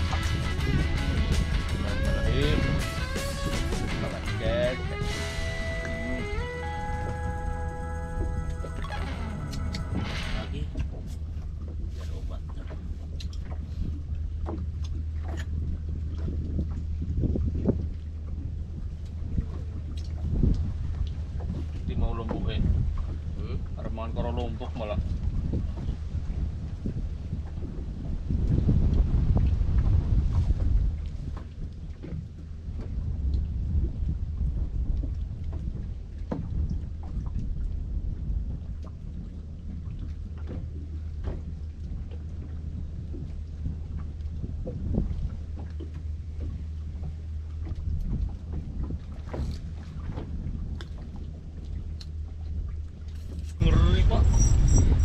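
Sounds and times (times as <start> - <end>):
wind rumbling on microphone: 0.0 - 55.0.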